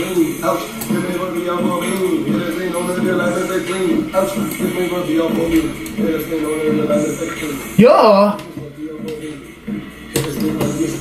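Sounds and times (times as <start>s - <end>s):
rapping over a hip-hop beat: 0.0s - 11.0s.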